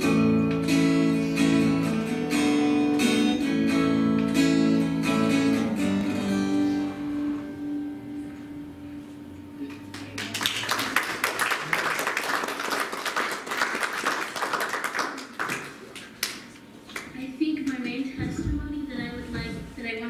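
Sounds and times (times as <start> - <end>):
acoustic guitar chord ringing: 0.0 - 9.7
audience applauding: 9.9 - 17.1.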